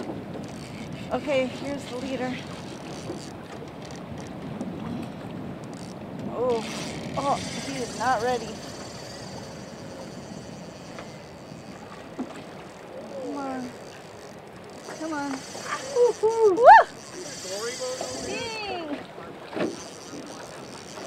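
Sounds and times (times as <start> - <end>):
people exclaiming: 15.9 - 17.0
rising whoop: 16.4 - 17.0.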